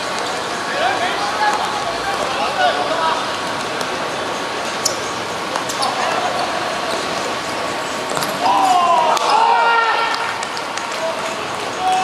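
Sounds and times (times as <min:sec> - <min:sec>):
players shouting: 0:00.6 - 0:04.5, 0:05.8 - 0:12.0.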